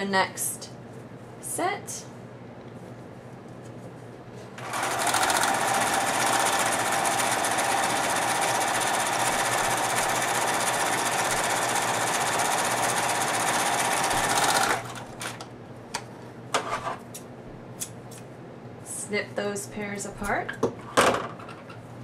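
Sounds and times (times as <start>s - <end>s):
sewing machine running: 4.6s - 15.4s.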